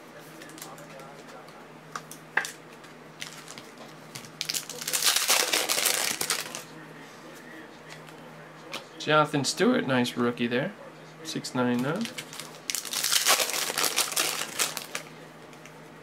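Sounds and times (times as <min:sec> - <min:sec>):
foil wrapper crinkling: 0:04.3 - 0:06.7, 0:11.9 - 0:15.1.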